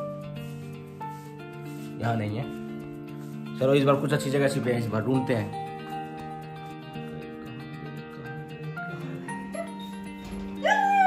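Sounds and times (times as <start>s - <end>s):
background music: 0.0s - 11.0s
dog whining: 9.4s - 11.0s.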